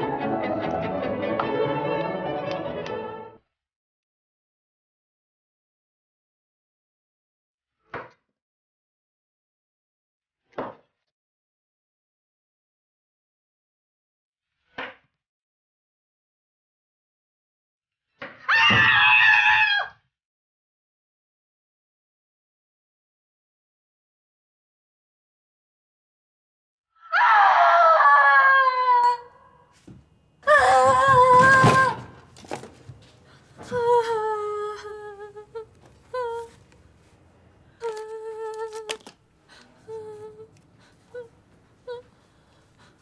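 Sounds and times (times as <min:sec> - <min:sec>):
woman screaming in pain: 0:30.5 - 0:32.1
woman humming: 0:33.6 - 0:36.6, 0:37.8 - 0:42.2.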